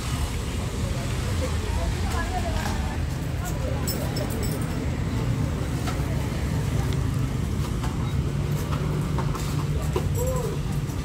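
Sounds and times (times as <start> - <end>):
low rumble of traffic: 0.0 - 11.0.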